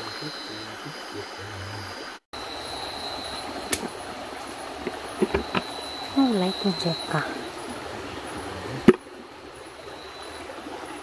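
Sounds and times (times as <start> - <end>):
high insect trill: 0.0 - 11.0
stream water running: 0.0 - 11.0
sharp knocks or splashes: 4.8 - 5.7, 8.7 - 9.1.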